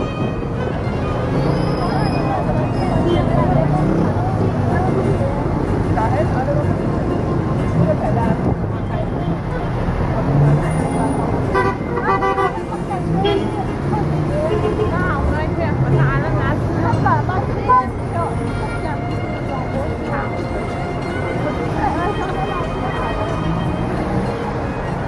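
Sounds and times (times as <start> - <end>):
dense street traffic: 0.0 - 25.0
people talking nearby: 0.0 - 25.0
car horn: 11.4 - 13.7.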